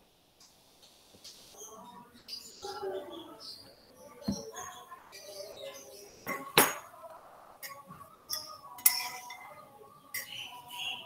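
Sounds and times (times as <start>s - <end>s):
faint steady background tone: 0.0s - 11.0s.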